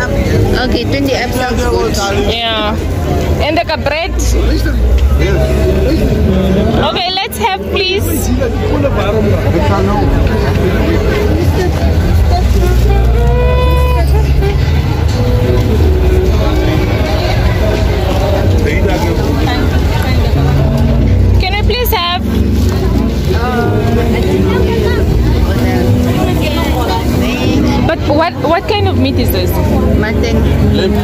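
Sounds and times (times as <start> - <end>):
people talking and calling out: 0.0 - 31.0
loud music with deep bass: 9.8 - 31.0.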